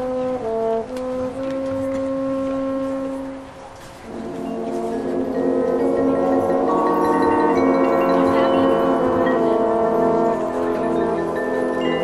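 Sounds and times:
brass section sustained note: 0.0s - 12.0s.

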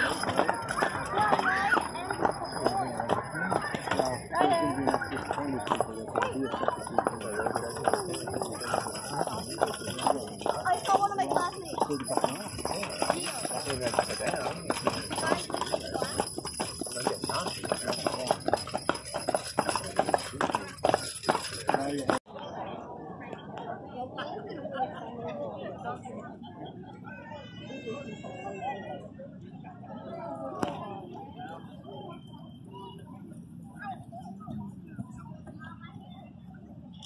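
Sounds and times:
people talking: 0.0s - 37.0s.

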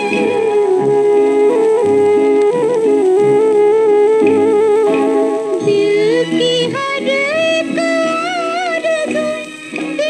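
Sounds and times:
film song on old record: 0.0s - 10.0s.

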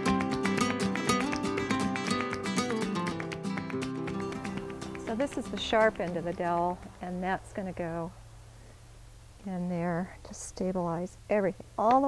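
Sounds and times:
flamenco acoustic guitar: 0.0s - 7.1s.

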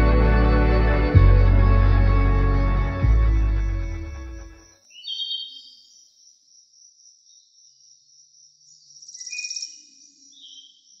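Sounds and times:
steady high drone: 0.0s - 4.7s
insect chirping: 3.6s - 11.0s.

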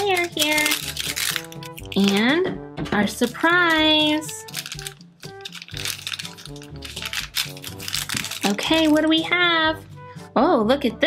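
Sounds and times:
plastic wrapper crackling: 0.0s - 2.3s, 3.2s - 9.2s
light plinking background music: 0.0s - 11.0s.

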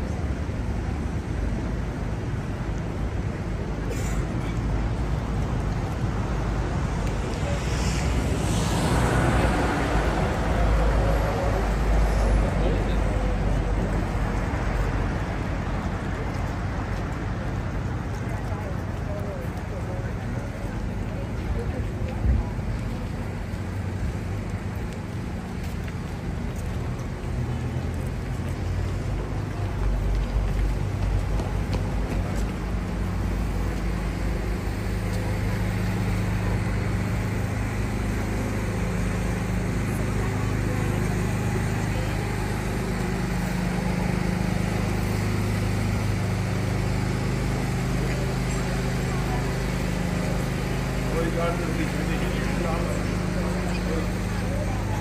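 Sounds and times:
people talking: 3.2s - 4.7s, 5.3s - 55.0s.

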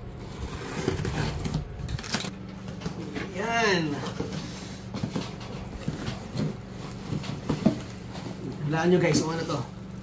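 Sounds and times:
box cutter slitting tape: 0.2s - 2.3s.

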